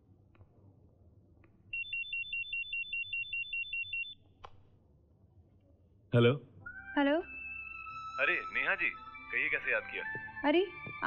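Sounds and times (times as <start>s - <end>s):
electronic telephone ringing: 1.8s - 4.2s.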